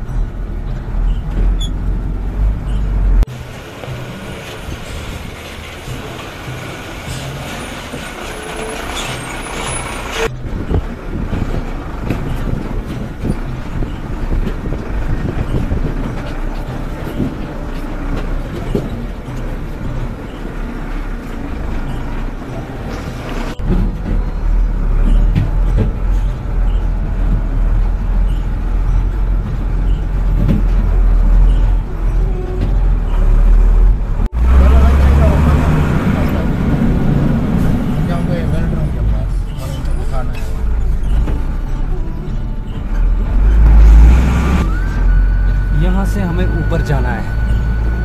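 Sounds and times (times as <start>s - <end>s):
body and suspension rattling: 0.0s - 48.0s
utility vehicle engine running: 0.0s - 48.0s.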